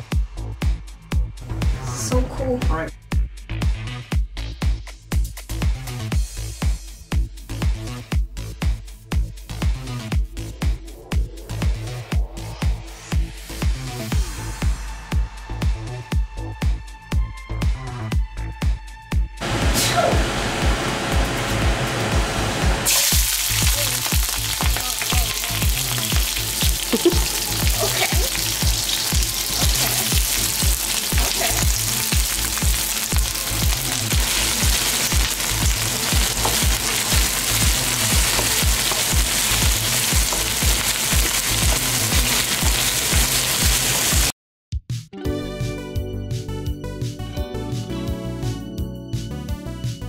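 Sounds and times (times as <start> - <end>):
music beat: 3.0 - 16.3, 20.6 - 44.3
aromatics sizzling in hot oil: 22.8 - 44.3.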